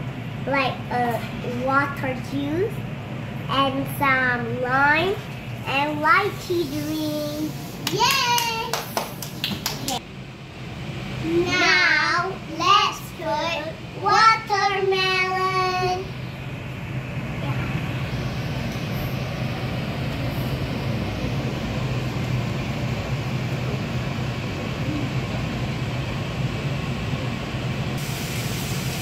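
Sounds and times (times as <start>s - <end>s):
low rumbling hum: 0.0s - 29.0s.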